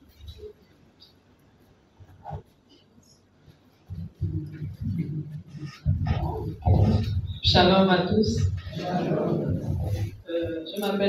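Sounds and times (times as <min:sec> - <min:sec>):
microphone handling thumps: 0:03.8 - 0:10.6.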